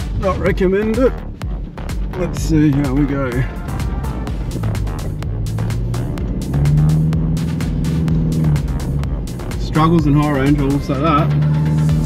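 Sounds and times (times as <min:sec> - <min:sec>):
diesel engine straining: 0:00.0 - 0:12.0
electronic music with steady beat: 0:00.0 - 0:12.0.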